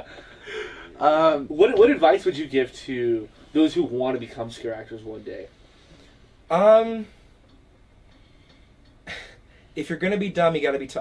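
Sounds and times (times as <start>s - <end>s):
faint low hum with hiss: 0.0s - 11.0s.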